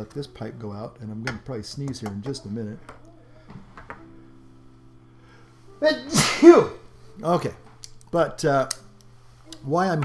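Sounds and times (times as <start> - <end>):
man sneezing: 6.1 - 6.8.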